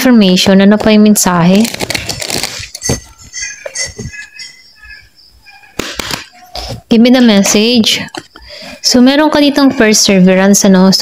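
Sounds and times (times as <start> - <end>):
birds chirping: 2.1 - 11.0.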